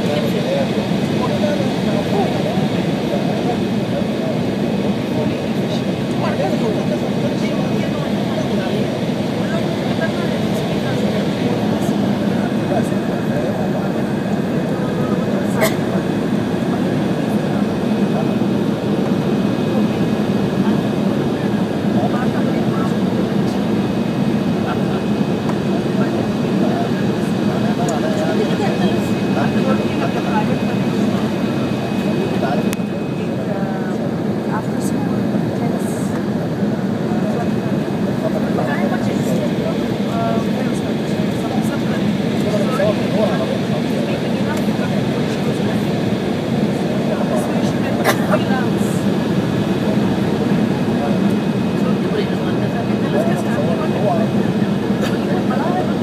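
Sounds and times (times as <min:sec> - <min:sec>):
faint high engine whine: 0:00.0 - 0:56.0
jet engine low hum: 0:00.0 - 0:56.0.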